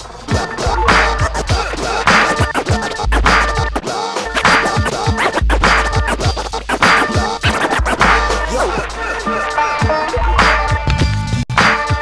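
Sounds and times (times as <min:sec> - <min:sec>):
hip hop beat with deep bass: 0:00.0 - 0:12.0
record scratching: 0:00.3 - 0:10.6.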